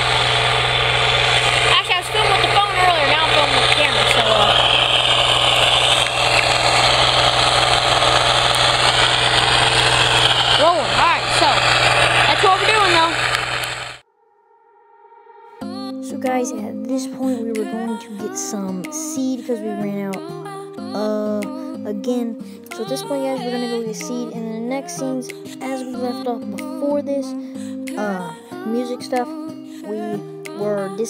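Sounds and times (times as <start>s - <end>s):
indistinct voices: 0.0s - 14.0s
tractor engine running: 0.0s - 14.0s.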